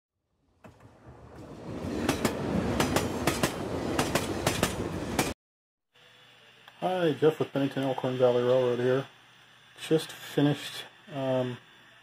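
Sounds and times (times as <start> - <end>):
train rumbling: 0.6 - 5.4.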